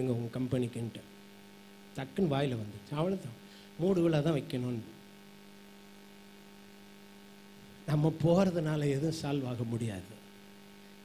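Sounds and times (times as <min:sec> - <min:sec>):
man speaking: 0:00.0 - 0:01.1, 0:02.0 - 0:05.0, 0:07.9 - 0:10.2
low electrical hum: 0:00.0 - 0:11.0.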